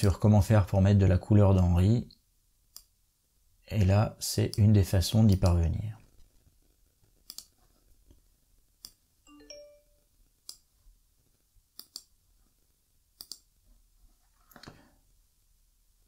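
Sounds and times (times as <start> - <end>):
computer mouse clicks: 2.7 - 2.9, 7.2 - 7.6, 11.7 - 12.1, 13.2 - 13.5.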